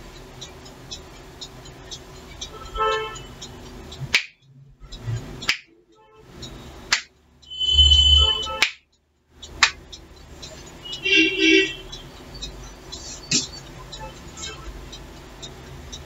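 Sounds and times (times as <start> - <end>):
short multi-tone pitched sound: 7.4 - 8.6
fingers snapping: 8.6 - 8.8.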